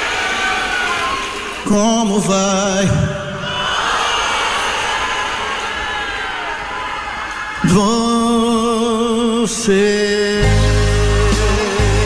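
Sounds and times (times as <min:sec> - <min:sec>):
audience cheering and chanting: 0:00.0 - 0:12.0
soft band accompaniment: 0:07.6 - 0:12.0.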